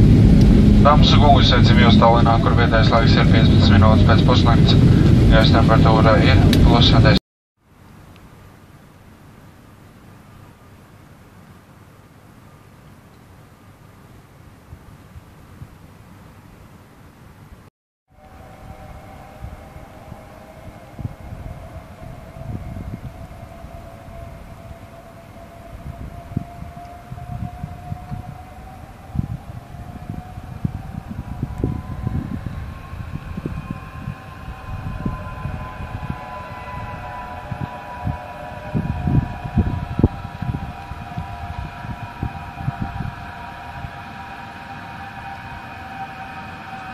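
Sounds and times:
irregular low rumble: 0.0 - 7.2, 18.1 - 46.9
tram electric motors whining: 0.0 - 7.2, 18.1 - 46.9.

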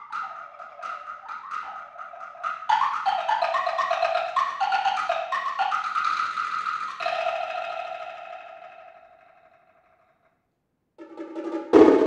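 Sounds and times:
sticks striking wood blocks and drums: 0.0 - 8.9.

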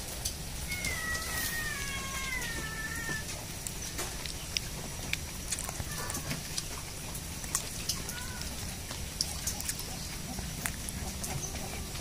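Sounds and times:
cat meowing: 0.6 - 3.4, 5.8 - 6.4, 8.0 - 8.6.

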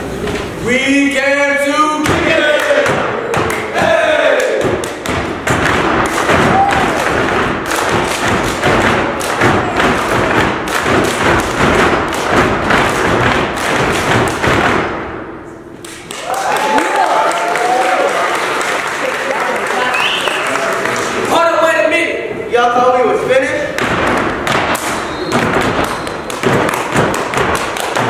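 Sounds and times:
rhythmic stomping and clapping: 2.0 - 21.7, 23.7 - 28.0.

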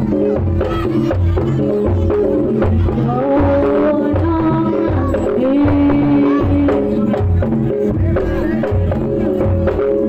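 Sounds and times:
deep drum beating: 0.0 - 10.0
rattling hand percussion: 0.0 - 10.0.

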